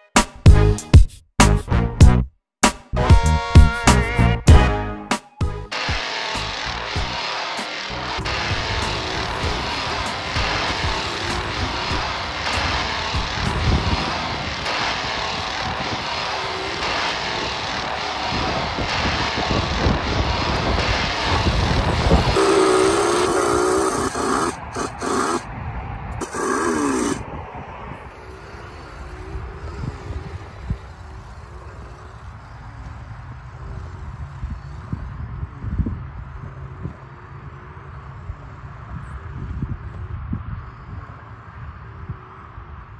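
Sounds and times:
chainsaw engine revving: 5.7 - 25.5, 26.2 - 27.3, 27.9 - 35.2.

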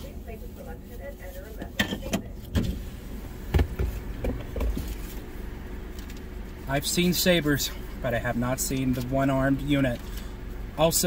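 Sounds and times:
car idling rumble: 0.0 - 11.0.

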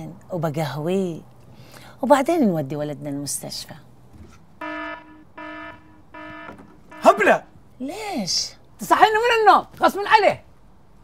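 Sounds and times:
wrong-answer buzzer: 4.6 - 7.4.

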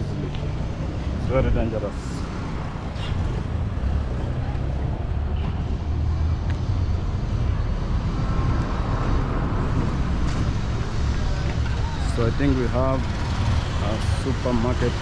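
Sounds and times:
cars and motorbikes passing: 0.0 - 15.0.

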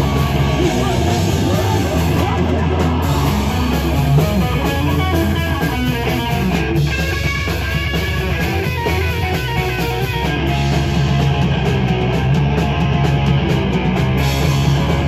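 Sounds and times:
electric guitar lead notes: 0.0 - 15.0
rock band playing: 0.0 - 15.0.

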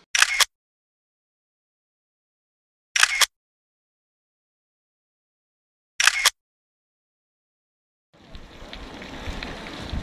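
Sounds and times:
camera shutter click: 0.1 - 0.5, 3.0 - 3.3, 6.0 - 6.4.

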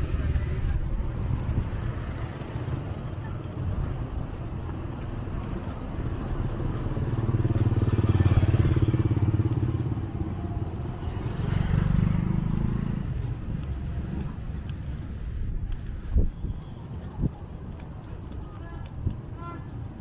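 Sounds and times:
passing vehicle engines: 0.0 - 20.0
motorcycle passing close by: 6.4 - 14.5.

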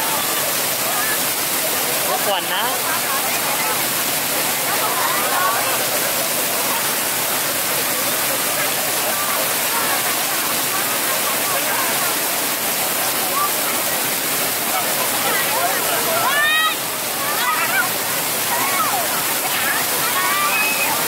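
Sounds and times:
faint children and crowd voices: 0.0 - 21.0
fountain water rushing and splashing: 0.0 - 21.0.

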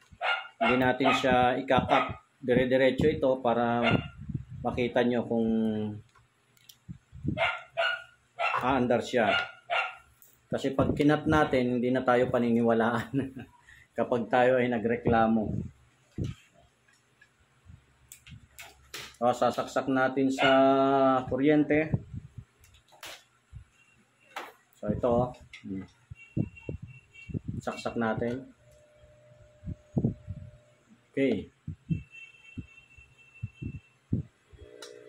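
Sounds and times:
dog barking: 0.2 - 2.2, 3.8 - 4.2, 7.4 - 10.1, 20.4 - 20.8
soft low thumps: 21.9 - 22.5, 26.4 - 27.7, 29.6 - 30.6, 31.6 - 32.7, 33.4 - 34.4.

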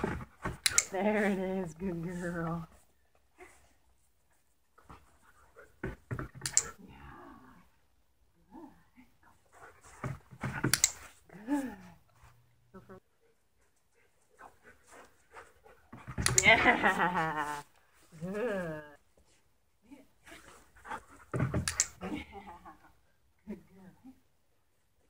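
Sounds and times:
dog panting: 13.2 - 16.2.

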